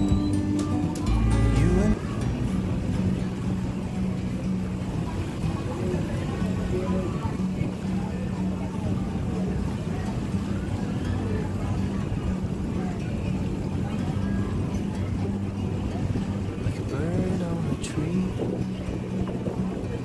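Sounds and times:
people talking: 0.0s - 20.0s
ship engine drone: 0.0s - 20.0s
wind noise: 0.0s - 20.0s.

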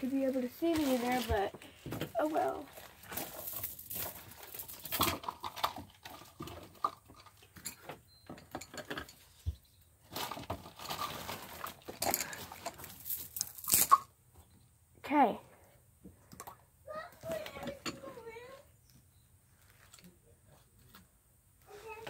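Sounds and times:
rustling and scraping: 0.0s - 14.6s, 17.0s - 22.0s.

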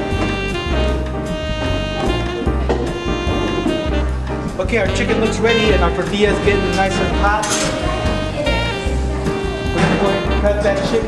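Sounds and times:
bass: 0.0s - 11.0s
drum kit: 0.0s - 11.0s
jazz horn melody: 0.0s - 11.0s.

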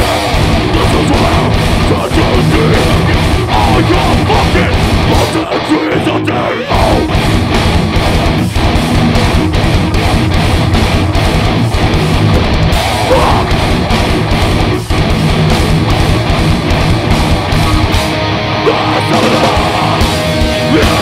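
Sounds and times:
heavy rock band playing: 0.0s - 21.0s.

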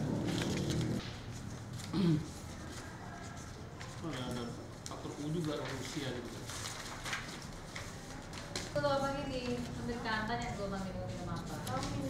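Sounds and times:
paper rustling: 0.0s - 12.0s.

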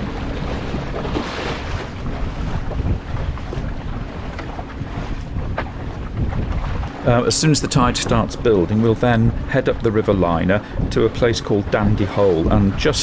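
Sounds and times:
water washing along hull: 0.0s - 13.0s
wind buffeting microphone: 0.0s - 13.0s.

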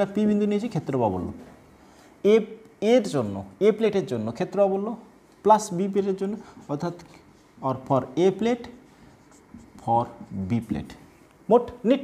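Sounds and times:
man talking: 0.0s - 1.5s, 2.2s - 8.8s, 9.8s - 12.0s
marker writing on whiteboard: 8.3s - 10.8s.

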